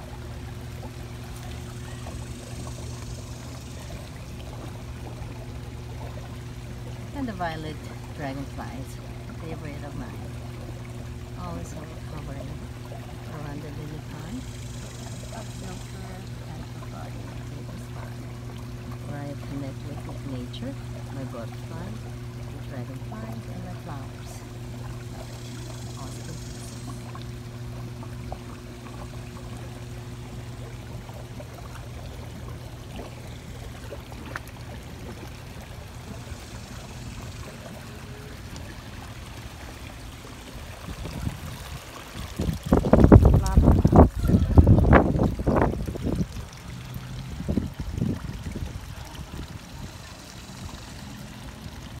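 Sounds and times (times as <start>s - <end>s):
pond water trickling: 0.0s - 52.0s.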